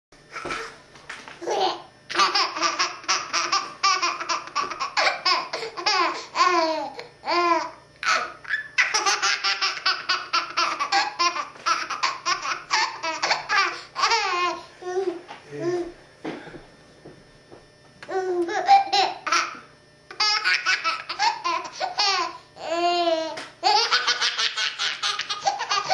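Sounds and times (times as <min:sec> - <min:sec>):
baby laughing: 0:01.4 - 0:15.2, 0:18.1 - 0:25.9.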